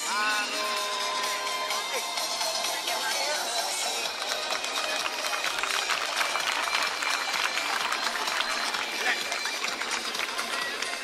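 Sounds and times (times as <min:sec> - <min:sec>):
faint music: 0:00.0 - 0:11.0
audience clapping: 0:03.7 - 0:11.0.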